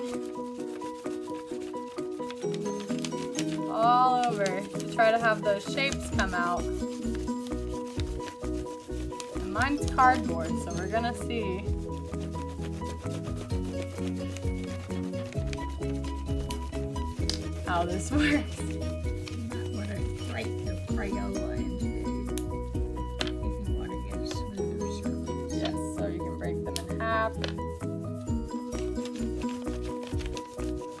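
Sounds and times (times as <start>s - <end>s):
crayon scraping on paper: 0.0s - 31.0s
plucked-string music: 0.0s - 31.0s.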